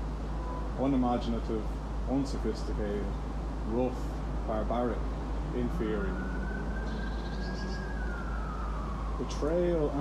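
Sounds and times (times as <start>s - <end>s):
low rumble: 0.0s - 10.0s
siren wailing: 5.5s - 10.0s.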